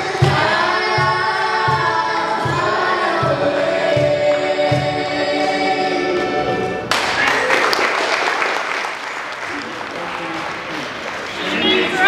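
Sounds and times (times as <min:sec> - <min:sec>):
folk band with voices singing: 0:00.0 - 0:06.9.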